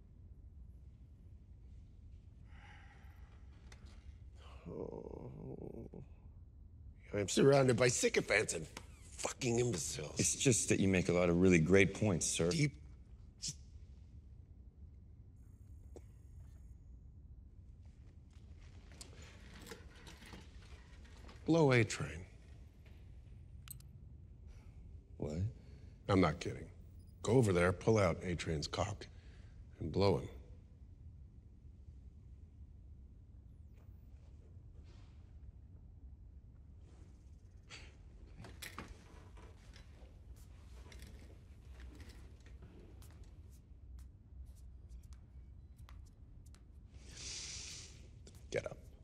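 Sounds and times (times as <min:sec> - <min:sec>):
low steady hum: 0:00.0 - 0:49.0
soft breath: 0:02.3 - 0:04.7, 0:46.9 - 0:48.2
soft rustles: 0:36.6 - 0:49.0.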